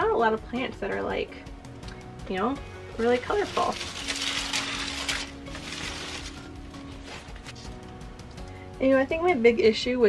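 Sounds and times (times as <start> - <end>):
artificial plants rustling and scraping: 3.0 - 7.9.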